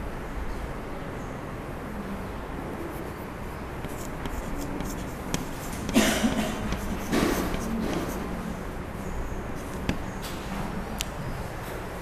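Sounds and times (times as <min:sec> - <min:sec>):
chalk scratching on blackboard: 0:02.9 - 0:08.4
chalk tapping on blackboard: 0:03.8 - 0:08.3, 0:09.7 - 0:10.1.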